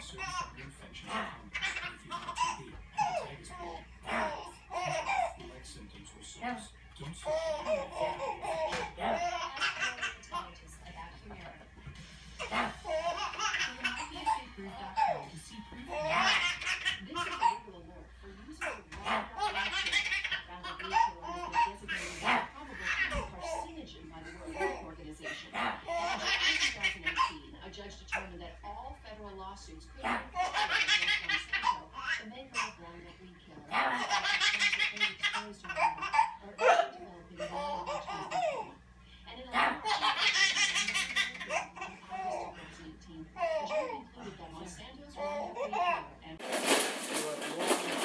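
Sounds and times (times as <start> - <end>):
baby laughing: 0.0 - 5.4, 7.2 - 10.6, 12.4 - 15.3, 15.9 - 17.7, 18.6 - 23.7, 24.3 - 27.4, 30.0 - 32.8, 33.7 - 38.8, 39.6 - 42.6, 43.4 - 44.1, 45.2 - 46.2
baby laughing and squealing: 1.5 - 3.3.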